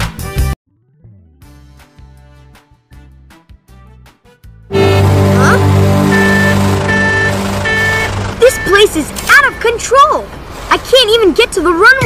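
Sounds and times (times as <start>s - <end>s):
cartoon soundtrack music: 0.0s - 9.6s
rising and falling sounds: 0.7s - 1.7s, 4.7s - 8.4s
vehicle engine drone: 4.7s - 10.7s.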